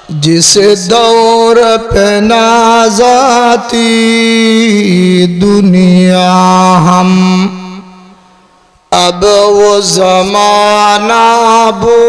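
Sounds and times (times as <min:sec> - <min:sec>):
man chanting through a microphone: 0:00.0 - 0:08.3, 0:08.9 - 0:12.0.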